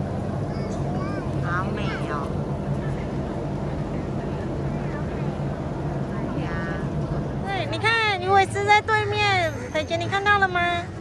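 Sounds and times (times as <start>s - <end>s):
distant voices: 0.0s - 11.0s
low motor drone: 0.0s - 11.0s.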